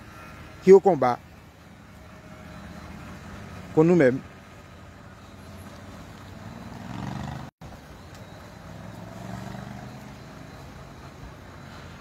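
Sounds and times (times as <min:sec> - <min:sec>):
car engines humming: 0:00.0 - 0:12.0.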